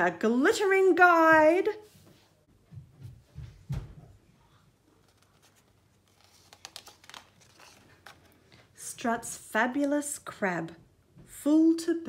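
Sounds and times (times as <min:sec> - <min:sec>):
book page turning: 0:04.7 - 0:08.8.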